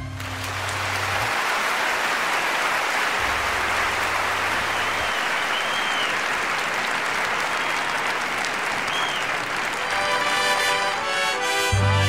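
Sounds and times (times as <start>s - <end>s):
large audience applauding: 0.0s - 12.0s
mariachi band low note: 9.8s - 12.0s.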